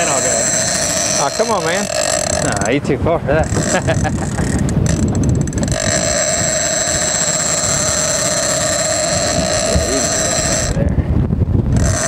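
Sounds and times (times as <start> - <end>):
fishing reel drag screaming: 0.0 - 2.8, 3.4 - 10.8, 11.8 - 12.0.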